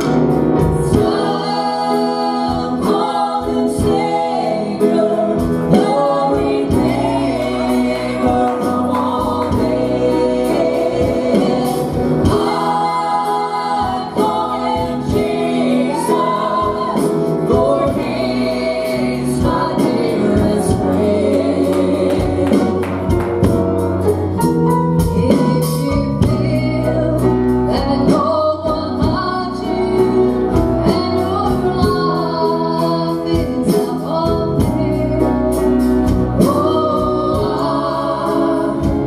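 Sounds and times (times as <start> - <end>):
women singing gospel: 0.0 - 23.6, 25.0 - 39.0
guitar: 0.0 - 39.0
piano: 0.0 - 39.0.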